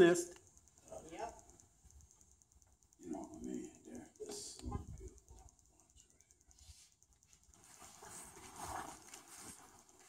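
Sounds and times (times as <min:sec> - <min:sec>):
fabric rubbing on microphone: 0:07.6 - 0:09.9.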